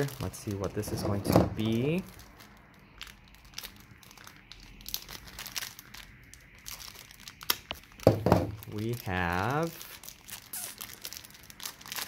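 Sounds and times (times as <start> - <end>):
plastic wrapper crinkling: 0.0 - 12.0.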